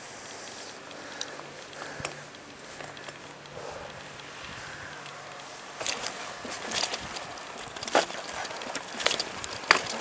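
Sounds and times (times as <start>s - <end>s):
bike knocking against concrete steps: 5.8s - 10.0s.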